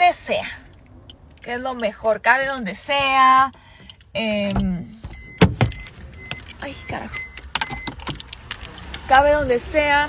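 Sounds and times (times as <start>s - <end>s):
car door clicks and knocks: 5.4s - 5.8s.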